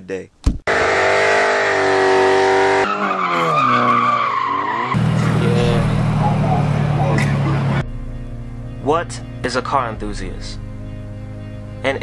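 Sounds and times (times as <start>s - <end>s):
tyre squeal: 0.7s - 5.4s
car engine revving: 0.7s - 12.0s.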